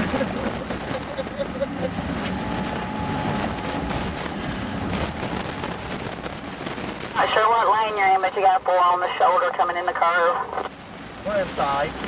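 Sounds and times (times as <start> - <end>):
people laughing: 0.0 - 2.2
road and tyre noise: 0.0 - 12.0.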